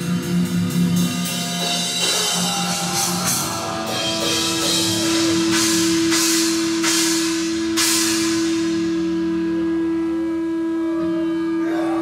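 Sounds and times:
cymbal crashes: 0:00.0 - 0:10.2
distorted guitar note ringing: 0:00.0 - 0:12.0.

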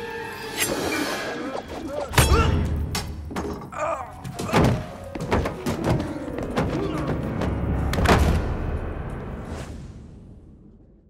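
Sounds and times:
person tumbling down wooden stairs: 0:03.2 - 0:08.2.

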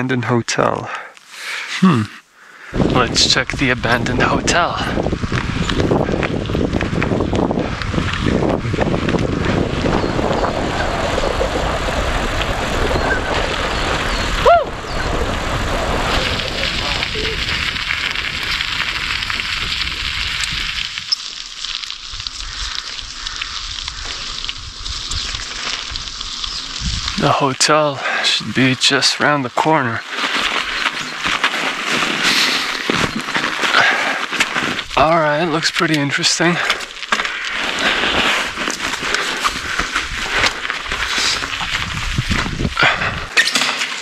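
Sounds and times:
bicycle tyre noise on pavement: 0:02.4 - 0:44.0
wind rushing over microphone: 0:02.7 - 0:21.2, 0:22.0 - 0:27.4, 0:37.4 - 0:43.4.

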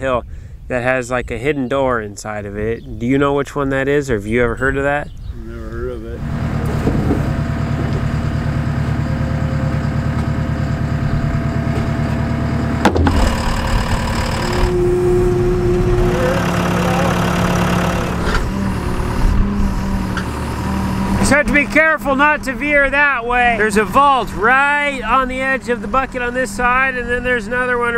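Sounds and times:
heavy equipment diesel engines: 0:05.4 - 0:27.9
sharp knock: 0:12.8 - 0:13.4.

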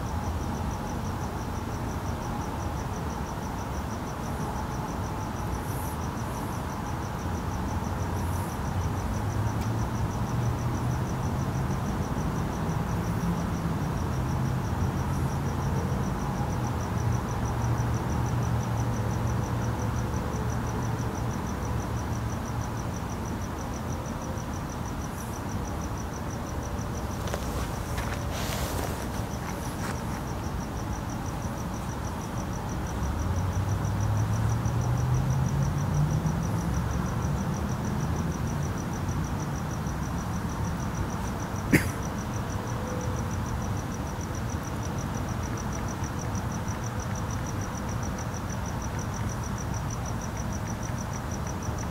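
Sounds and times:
crickets chirping: 0:00.0 - 0:51.9
low traffic rumble: 0:06.2 - 0:51.9.

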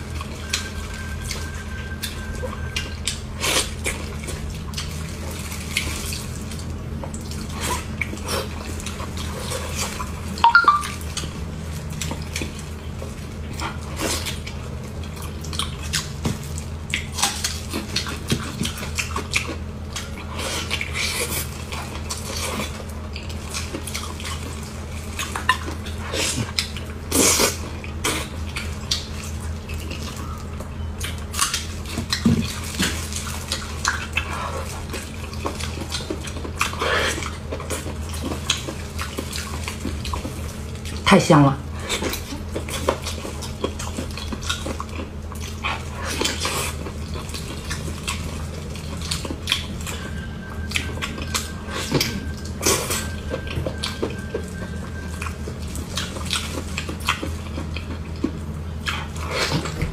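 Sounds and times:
wet chewing and lip-smacking: 0:00.0 - 0:41.1, 0:41.8 - 0:59.9
steady low hum: 0:00.0 - 0:59.9
sticky squelches of tearing meat: 0:00.0 - 0:59.9.

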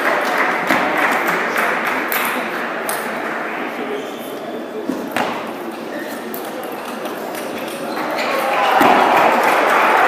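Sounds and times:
crowd murmur: 0:00.0 - 0:10.0.

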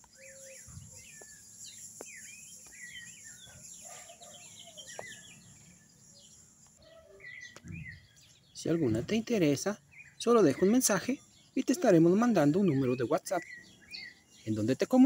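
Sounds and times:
steady high hiss: 0:00.0 - 0:06.8
birds chirping and singing: 0:00.0 - 0:15.0.

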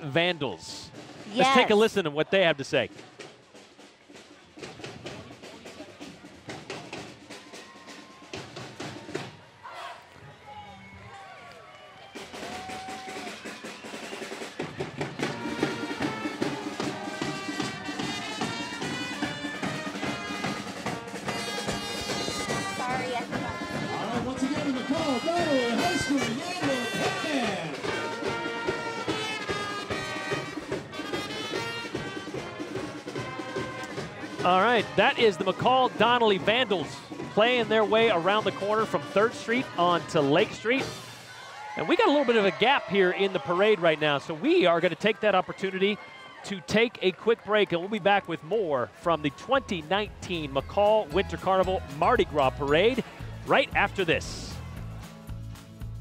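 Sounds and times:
drums keeping a beat: 0:00.9 - 0:09.4, 0:12.2 - 0:41.2, 0:41.8 - 0:45.8, 0:46.4 - 0:56.0
trumpets and low brass: 0:15.2 - 0:41.0.

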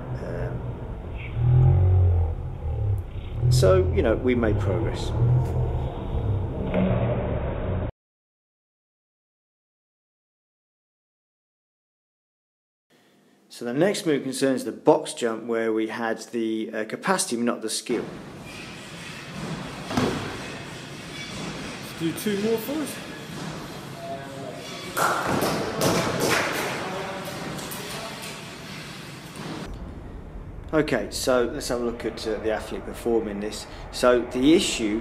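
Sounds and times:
low uneven rumble: 0:00.0 - 0:06.7, 0:29.6 - 0:35.0.

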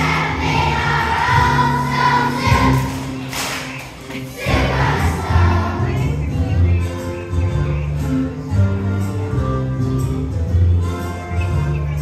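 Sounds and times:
children's choir singing: 0:00.0 - 0:06.3
musical accompaniment: 0:00.0 - 0:12.0.

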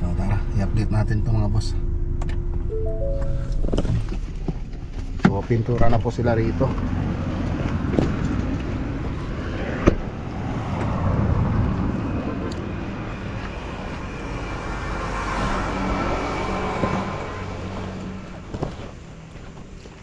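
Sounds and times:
road traffic passing: 0:00.0 - 0:20.0.

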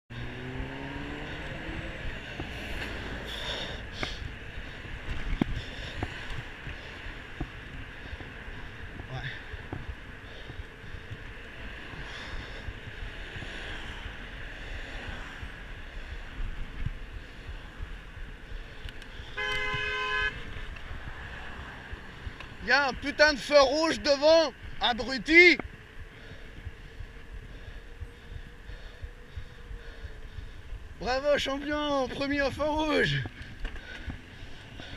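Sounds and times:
engine rising in pitch: 0:00.1 - 0:03.6
road traffic: 0:00.1 - 0:34.9
vehicle horn: 0:19.3 - 0:20.6.

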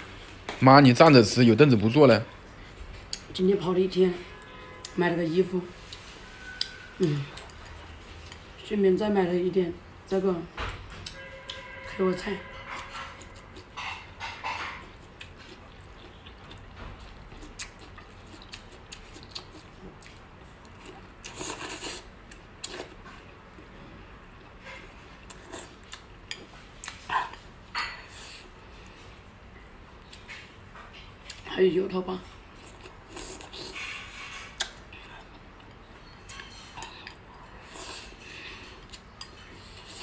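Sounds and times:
chewing food: 0:12.6 - 0:23.7, 0:25.2 - 0:27.5.

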